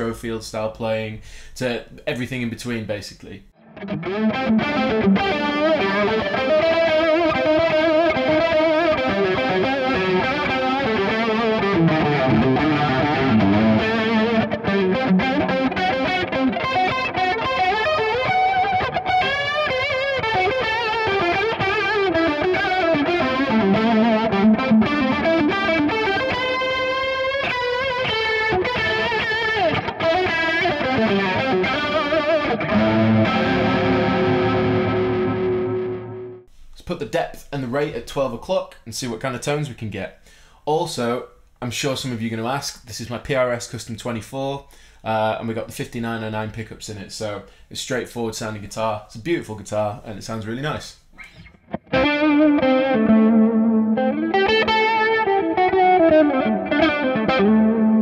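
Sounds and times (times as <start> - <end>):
electric guitar with chorus effect: 3.6 - 36.5, 51.2 - 58.0.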